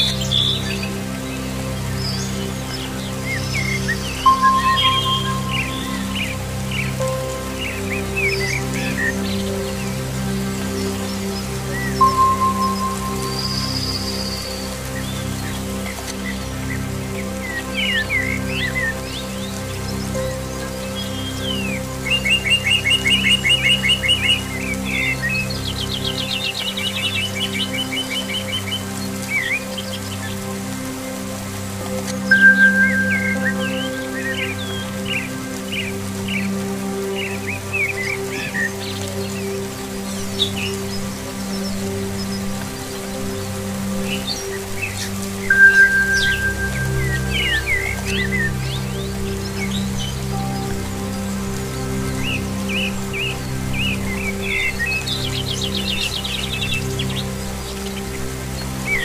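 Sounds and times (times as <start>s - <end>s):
birds singing: 0.0s - 30.4s, 31.0s - 59.0s
faint rain hiss: 0.0s - 59.0s
soft music of low chords: 0.0s - 59.0s
clear whistled bird note: 45.5s - 47.9s.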